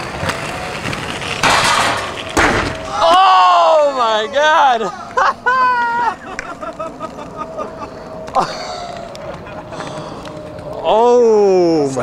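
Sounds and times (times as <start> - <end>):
steady faint tone: 2.0 - 12.0
man shouting oh: 2.9 - 4.9.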